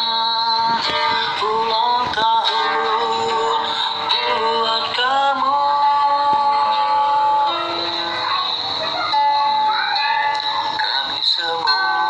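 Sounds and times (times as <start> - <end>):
man singing through phone speaker: 0.0 - 12.0.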